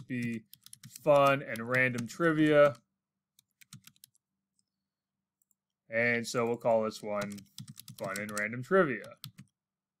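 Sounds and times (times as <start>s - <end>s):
computer keyboard keystrokes: 0.0s - 2.8s, 3.4s - 4.2s, 7.2s - 9.5s
man's voice: 1.1s - 2.8s, 5.9s - 7.4s, 8.0s - 9.2s.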